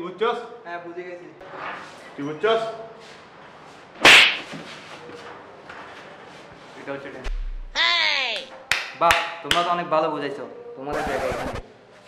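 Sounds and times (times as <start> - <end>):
sharp crack: 4.0 - 4.5.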